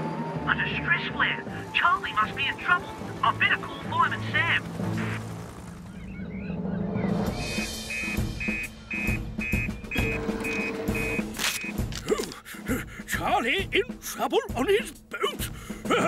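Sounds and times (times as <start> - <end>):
cartoon soundtrack music: 0.0 - 5.2, 6.2 - 16.0
short high electronic beeps: 7.9 - 11.7.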